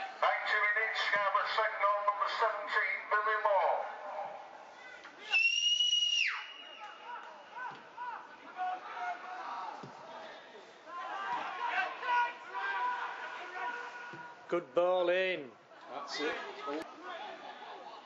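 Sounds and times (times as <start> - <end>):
referee's whistle blast: 5.3 - 7.2.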